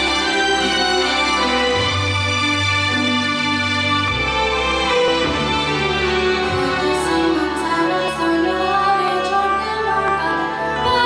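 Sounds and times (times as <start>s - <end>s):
instrumental accompaniment: 0.0s - 11.0s
woman singing into microphone: 6.6s - 11.0s.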